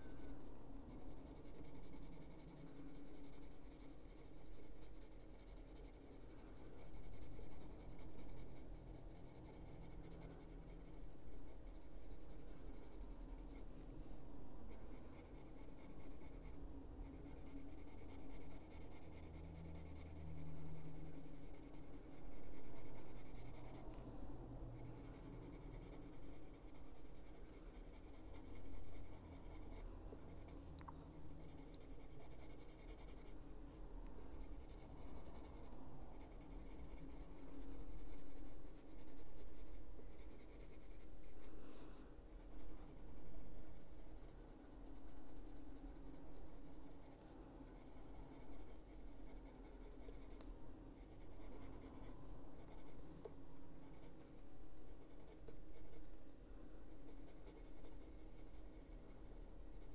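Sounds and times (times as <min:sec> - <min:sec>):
pencil scratching on paper: 0:00.0 - 0:56.2, 0:56.8 - 0:59.9.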